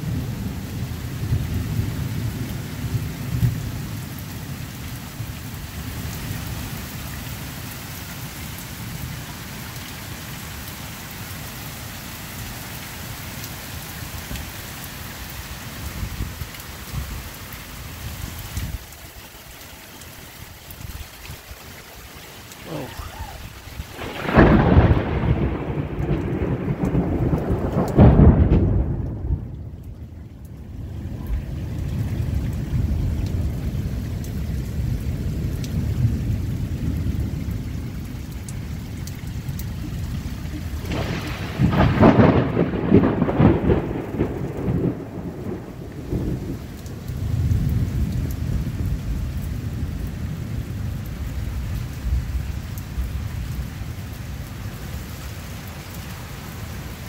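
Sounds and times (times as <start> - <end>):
heavy rain falling: 0.0 - 57.0
loud thunder: 22.7 - 29.8, 40.3 - 49.2.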